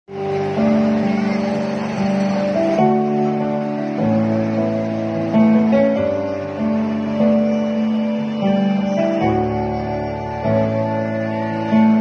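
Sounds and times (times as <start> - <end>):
keyboard and string ensemble chords: 0.1 - 12.0.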